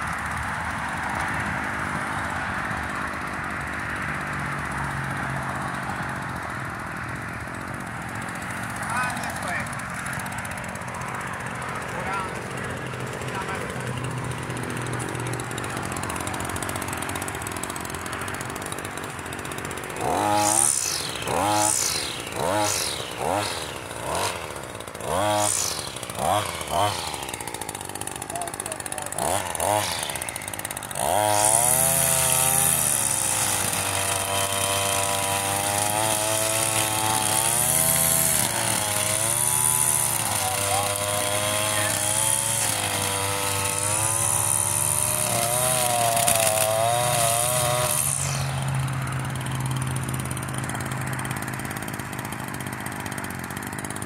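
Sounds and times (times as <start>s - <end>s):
string trimmer engine revving: 0.0s - 54.0s
trimmer line cutting grass: 0.0s - 54.0s.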